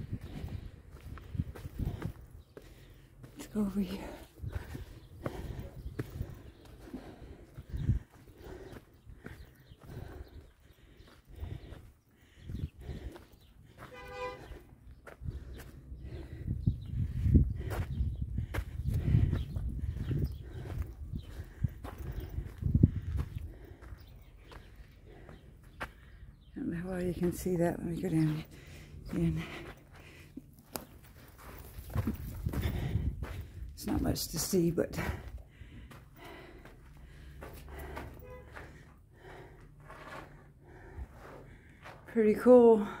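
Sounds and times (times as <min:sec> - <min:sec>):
wind buffeting microphone: 0:00.0 - 0:02.8, 0:04.2 - 0:13.2, 0:15.0 - 0:25.3, 0:31.8 - 0:34.1
footsteps crunching on dirt path: 0:00.0 - 0:43.0.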